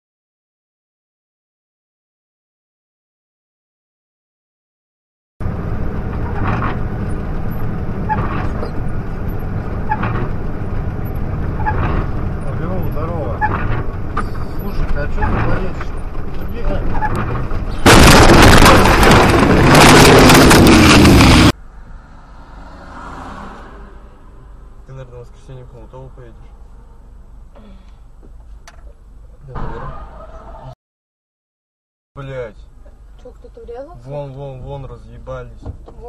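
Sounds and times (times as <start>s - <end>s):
road and engine noise: 5.4s - 30.8s, 32.2s - 36.0s
traffic noise: 5.4s - 30.8s, 32.2s - 36.0s
loud distorted noise: 17.8s - 21.6s.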